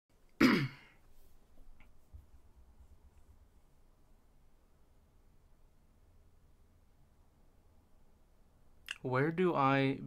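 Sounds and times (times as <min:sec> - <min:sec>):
man clearing throat: 0:00.4 - 0:01.0.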